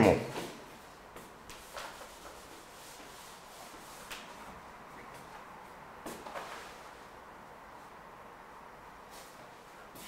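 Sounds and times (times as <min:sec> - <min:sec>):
cloth wiping a chalkboard: 0:00.3 - 0:08.1, 0:09.0 - 0:10.0.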